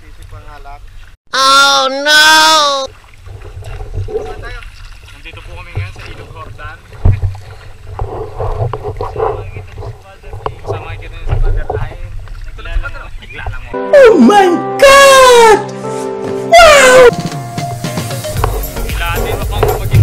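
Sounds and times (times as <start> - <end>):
paddles splashing in water: 2.1 - 13.8, 17.1 - 20.0
wind rumble on microphone: 3.2 - 13.7.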